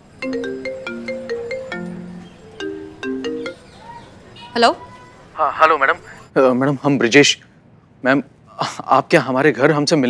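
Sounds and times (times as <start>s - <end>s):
phone ringtone bell-like notes: 0.2s - 3.8s.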